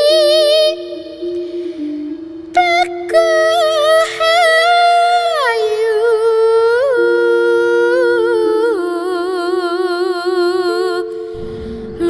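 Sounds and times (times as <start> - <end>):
low held tone: 11.2 - 12.0.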